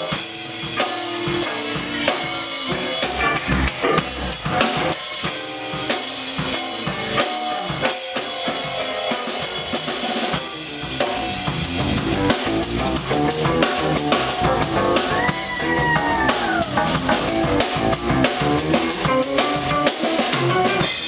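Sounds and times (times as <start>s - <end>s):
drum kit: 0.0s - 21.0s
electric guitar: 0.0s - 21.0s
live band playing: 0.0s - 21.0s.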